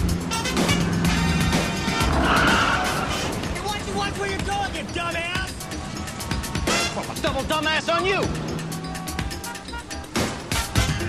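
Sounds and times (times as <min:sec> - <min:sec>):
background music: 0:00.0 - 0:11.0
city traffic: 0:00.0 - 0:11.0
car tyres screeching: 0:00.3 - 0:10.6.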